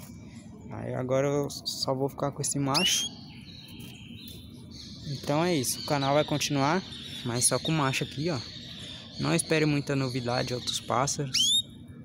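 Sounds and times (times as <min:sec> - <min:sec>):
canary trilling: 0:02.7 - 0:03.8, 0:04.7 - 0:11.8.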